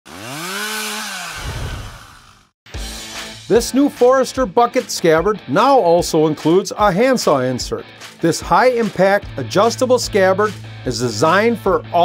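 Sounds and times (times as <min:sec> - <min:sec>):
chainsaw engine revving: 0:00.1 - 0:02.6.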